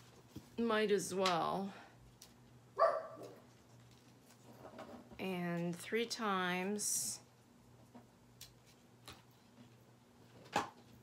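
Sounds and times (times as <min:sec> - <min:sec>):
dog barking: 0:02.8 - 0:03.4.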